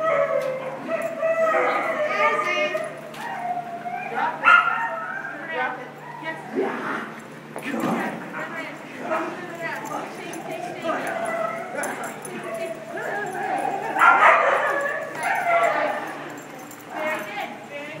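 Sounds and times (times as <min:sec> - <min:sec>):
people's voices in background: 0:05.2 - 0:18.0.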